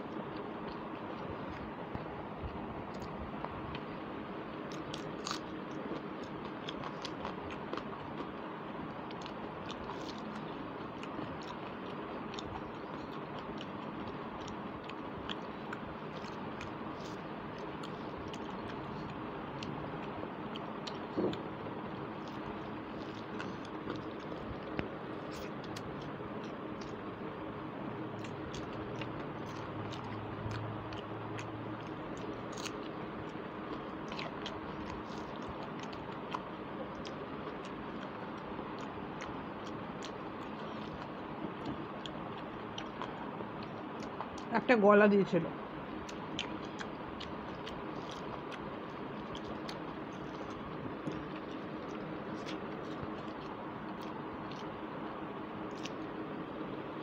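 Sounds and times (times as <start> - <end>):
close chewing and mouth sounds: 0.0 - 44.6, 45.6 - 57.0
mouth clicks and smacks: 46.0 - 54.8.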